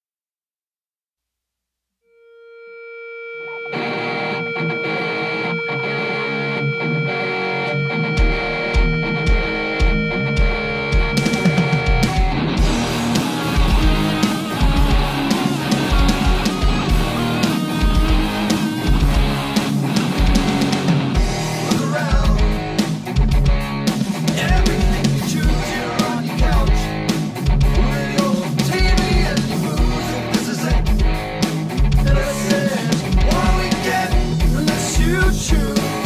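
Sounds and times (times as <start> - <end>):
sustained guitar note: 2.1 - 21.7
distorted guitar rock band: 3.1 - 36.0
bass drum beat: 8.1 - 36.0.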